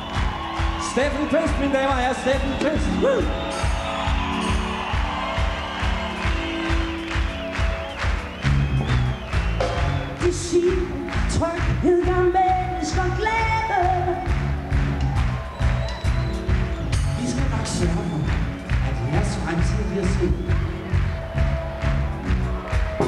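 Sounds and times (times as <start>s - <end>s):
steady drum beat: 0.0s - 23.0s
woman singing lead vocal: 10.3s - 14.4s.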